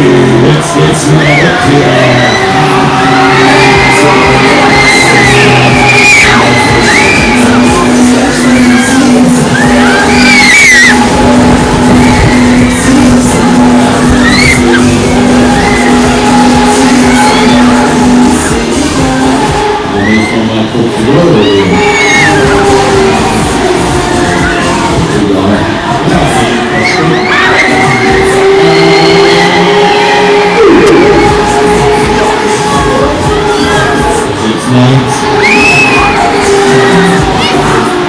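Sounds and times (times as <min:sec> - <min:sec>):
loud song with vocals: 0:00.0 - 0:38.0
riders whooping and shouting: 0:00.1 - 0:38.0.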